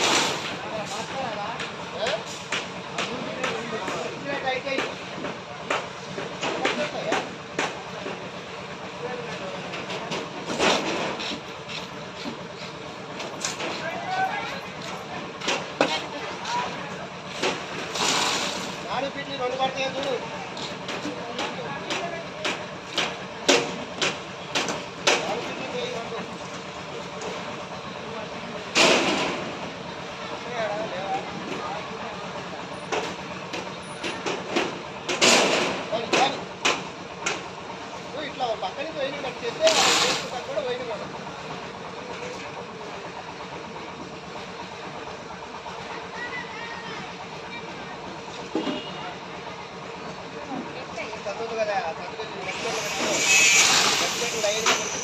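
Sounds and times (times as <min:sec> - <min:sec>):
workers' voices: 0:00.0 - 0:55.0
wet concrete pouring: 0:17.6 - 0:19.2, 0:39.2 - 0:40.7, 0:52.5 - 0:55.0.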